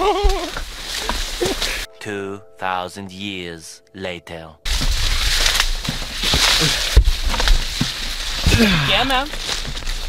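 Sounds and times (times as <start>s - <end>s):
dry corn leaves rustling: 0.0s - 1.9s, 4.7s - 10.0s.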